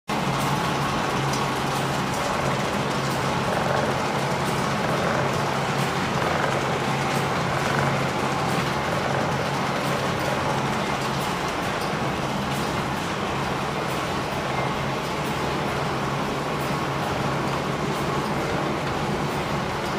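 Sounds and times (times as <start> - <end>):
printing press running: 0.1 - 19.9.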